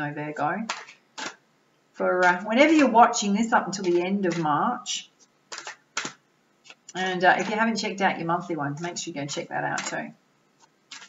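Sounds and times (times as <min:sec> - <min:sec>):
cards shuffled by hand: 0:00.6 - 0:01.4, 0:05.2 - 0:07.6, 0:10.6 - 0:11.0.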